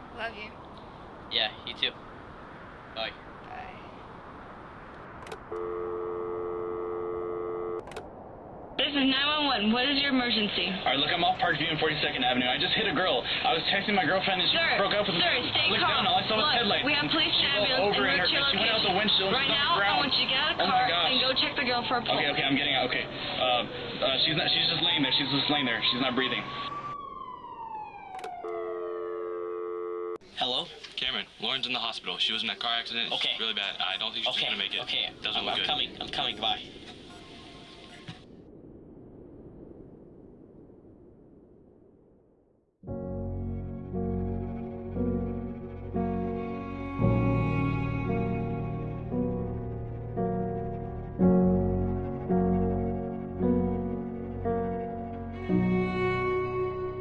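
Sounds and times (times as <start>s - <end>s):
siren with falling pitch: 5.1s - 8.2s, 24.6s - 30.2s
click: 5.2s - 5.6s, 7.8s - 8.1s, 28.2s - 28.6s
telephone clicks: 5.2s - 5.7s
telephone dial tone: 5.3s - 8.0s.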